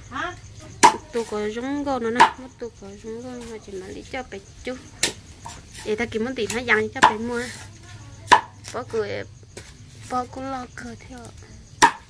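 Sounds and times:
blade chopping into wood: 0:00.8 - 0:01.0, 0:11.8 - 0:12.0.

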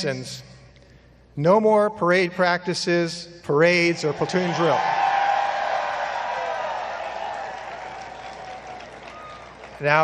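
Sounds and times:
crowd cheering and applauding: 0:04.2 - 0:10.0.

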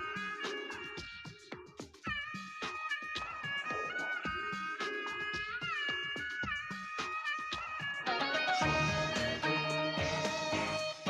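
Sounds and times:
instrumental backing music: 0:00.0 - 0:11.0.

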